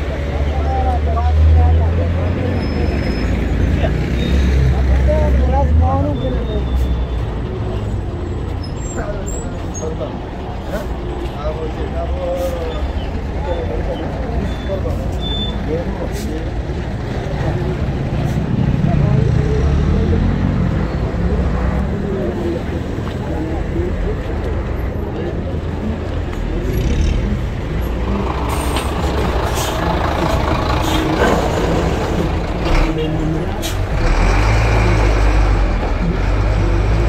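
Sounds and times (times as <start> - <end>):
people talking: 0.0 - 8.1, 8.8 - 37.0
heavy engine rumble: 0.0 - 37.0
motor traffic: 0.0 - 37.0.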